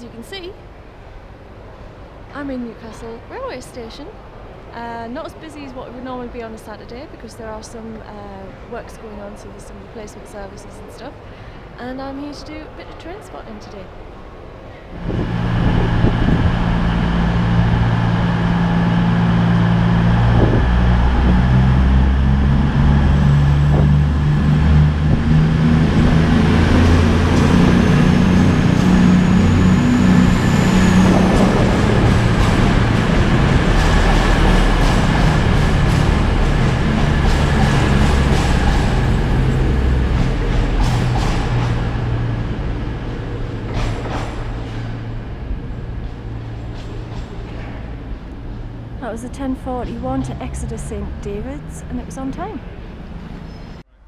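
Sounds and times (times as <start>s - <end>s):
diesel train engines running: 0.0s - 54.0s
train passing: 0.0s - 54.0s.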